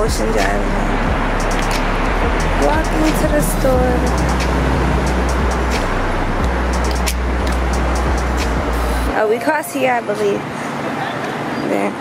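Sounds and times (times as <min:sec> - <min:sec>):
road traffic: 0:00.0 - 0:12.0.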